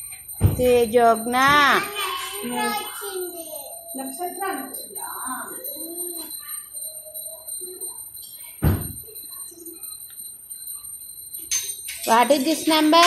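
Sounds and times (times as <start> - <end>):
loud thump: 0.4 - 0.7, 8.6 - 9.0.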